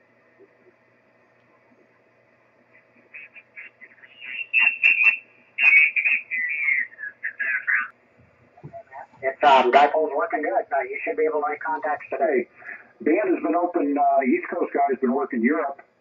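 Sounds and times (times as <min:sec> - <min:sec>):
garbled radio voice: 0:02.9 - 0:07.9, 0:08.7 - 0:15.8.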